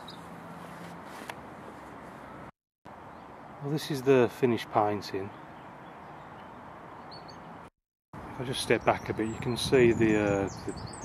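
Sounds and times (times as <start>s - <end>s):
outdoor background hiss: 0.0s - 10.6s
faint bird chirp: 5.3s - 7.6s.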